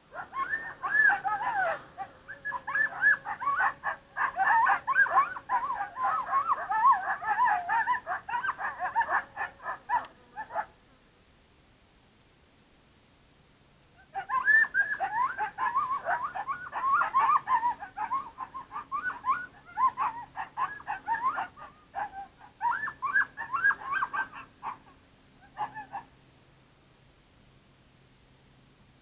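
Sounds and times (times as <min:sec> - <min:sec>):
coyotes yipping and howling: 0:00.0 - 0:10.7, 0:14.0 - 0:26.1.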